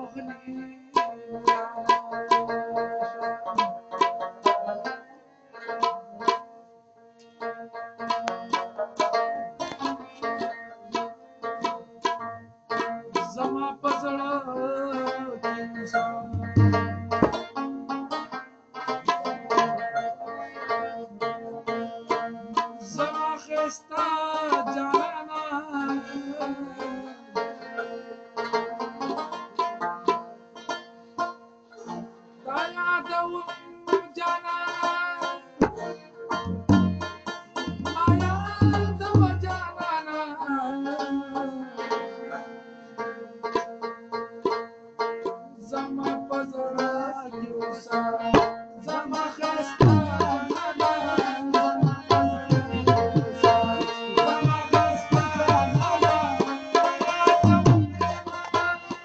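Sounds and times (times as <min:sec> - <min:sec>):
plucked lute melody: 0:01.0 - 0:23.6, 0:24.5 - 0:40.0, 0:43.0 - 0:49.2, 0:49.8 - 0:58.7
low thumps: 0:16.4 - 0:17.5, 0:36.4 - 0:39.7.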